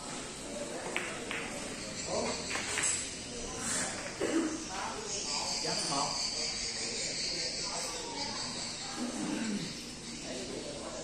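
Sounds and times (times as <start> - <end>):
high-pitched insect drone: 4.9 - 11.0.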